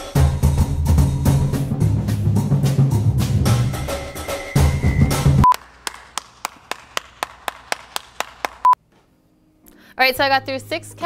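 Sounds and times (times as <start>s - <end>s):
background music with drums: 0.0s - 5.5s
electronic beep: 3.9s - 5.5s.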